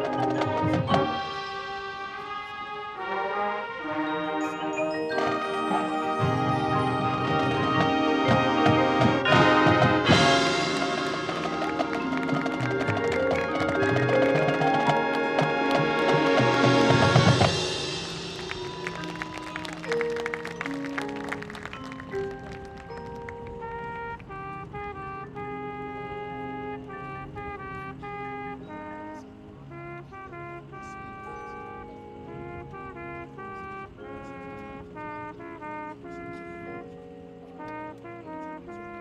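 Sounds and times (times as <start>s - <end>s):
marching band brass chords: 0.0s - 39.0s
full band hit: 7.1s - 20.3s.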